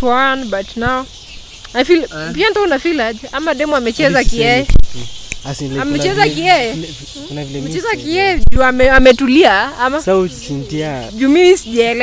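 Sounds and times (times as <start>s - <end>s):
person talking into a microphone: 3.9s - 9.0s.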